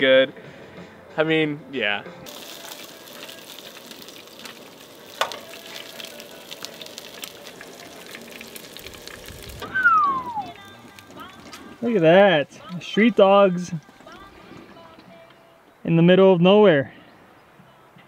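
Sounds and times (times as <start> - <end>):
sausages sizzling in a pan: 2.3 - 14.2
short falling tone: 9.6 - 10.5.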